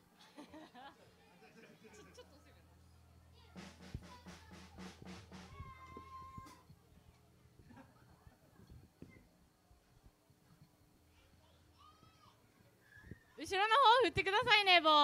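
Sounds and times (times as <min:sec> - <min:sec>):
high call on one pitch: 0:03.6 - 0:06.7.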